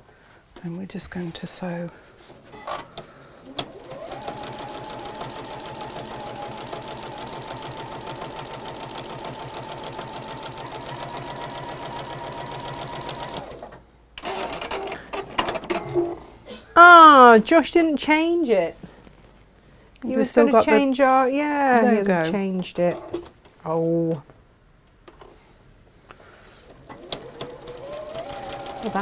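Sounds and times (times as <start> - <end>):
electric sewing machine stitching: 3.5 - 15.0, 26.8 - 29.0.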